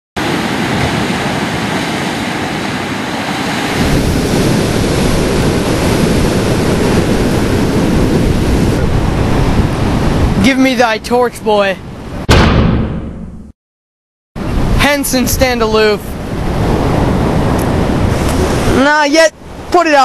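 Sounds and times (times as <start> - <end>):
ocean surf breaking: 0.2 - 12.3, 14.4 - 20.0
wind rumbling on microphone: 0.2 - 12.3, 14.4 - 19.8.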